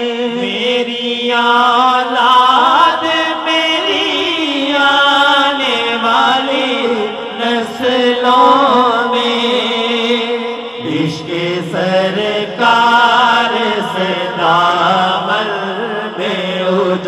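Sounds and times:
men humming a drone: 0.0s - 17.0s.

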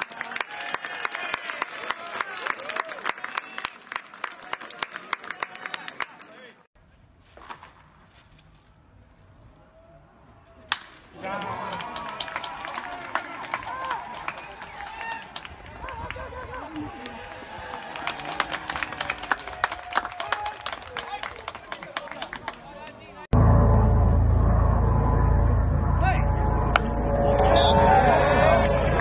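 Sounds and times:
crowd cheering and clapping: 0.0s - 6.6s, 10.6s - 22.9s, 26.6s - 29.0s.

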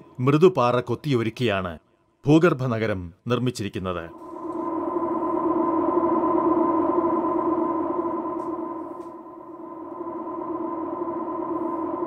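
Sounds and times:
synthesizer pad chords: 4.1s - 12.0s.

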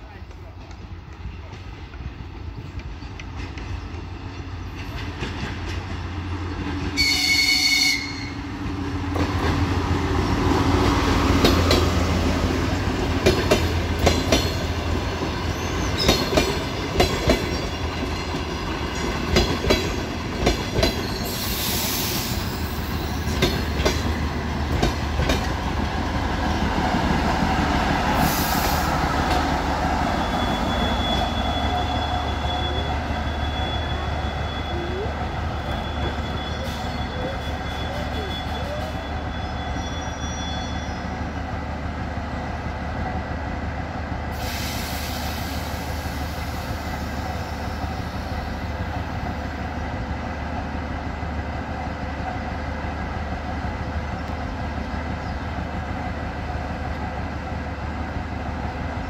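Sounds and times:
train wheels clacking over rail joints: 0.2s - 7.0s, 12.9s - 26.9s
high brake squeal: 20.9s - 23.3s, 30.1s - 41.2s.

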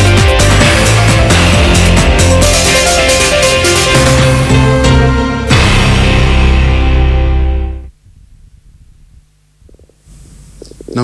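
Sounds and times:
low studio room hum: 7.3s - 11.0s.

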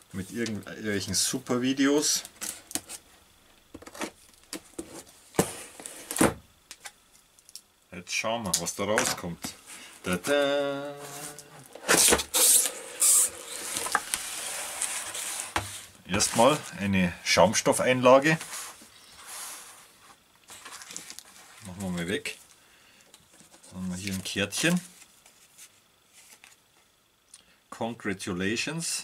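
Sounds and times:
cardboard box scraping rustles: 11.1s - 16.8s.

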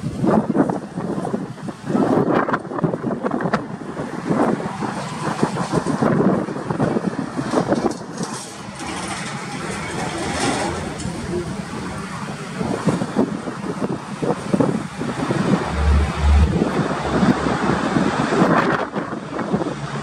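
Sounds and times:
turboprop engines rumbling: 0.0s - 20.0s
wind buffeting microphone: 0.0s - 20.0s.

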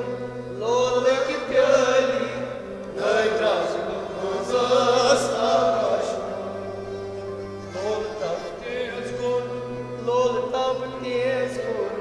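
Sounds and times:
harmonium and string ensemble: 0.0s - 12.0s.

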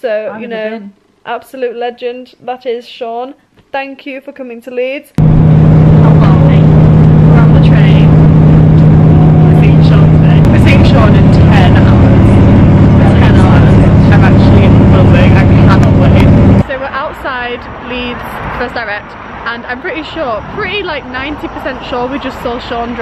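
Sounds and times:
vehicle cabin drone: 5.2s - 17.0s, 19.4s - 23.0s.

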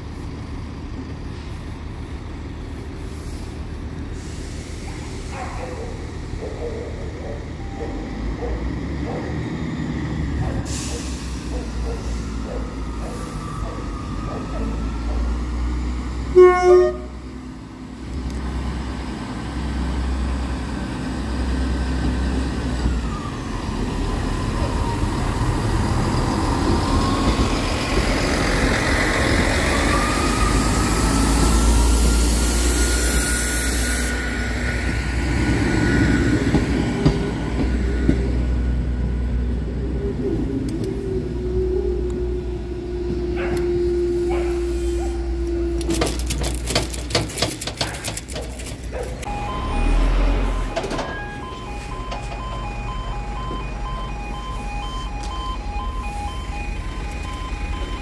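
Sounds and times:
diesel train engines running: 0.0s - 58.0s
train horn toots: 16.3s - 17.2s.

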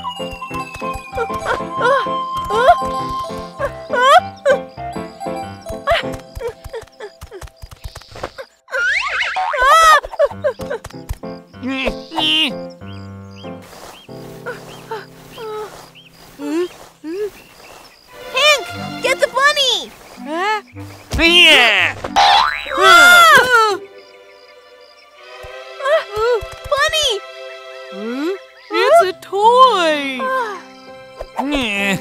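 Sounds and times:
children's background music: 0.0s - 6.8s, 18.1s - 32.0s
cartoon boing glide: 22.2s - 23.0s.

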